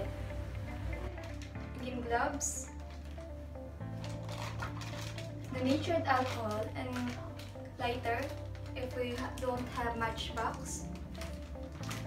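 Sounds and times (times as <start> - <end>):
background music with low notes: 0.0 - 12.0.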